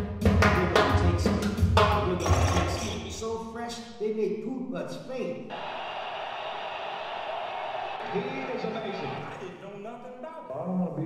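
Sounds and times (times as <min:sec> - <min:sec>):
recorded man's voice reading: 0:02.0 - 0:05.5, 0:08.1 - 0:11.0.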